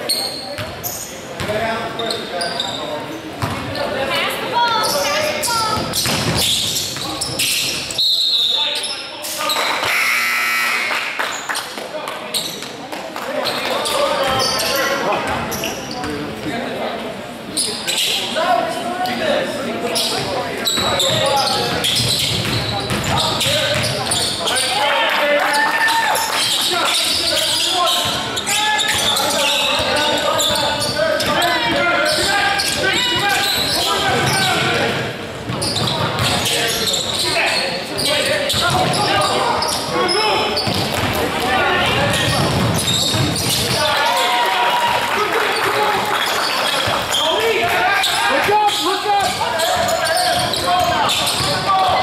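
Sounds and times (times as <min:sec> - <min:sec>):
shouting and chatter: 0:00.0 - 0:52.0.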